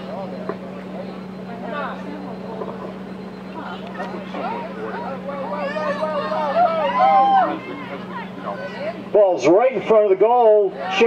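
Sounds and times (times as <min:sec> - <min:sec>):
faint distant voices: 0:00.0 - 0:11.0
steady low hum: 0:00.0 - 0:11.0.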